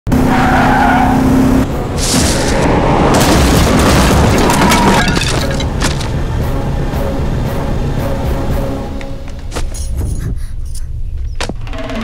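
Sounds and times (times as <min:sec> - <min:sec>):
car speeding: 0:00.1 - 0:09.3
tyres skidding: 0:00.1 - 0:10.1
car crashing through metal gate: 0:02.0 - 0:06.1.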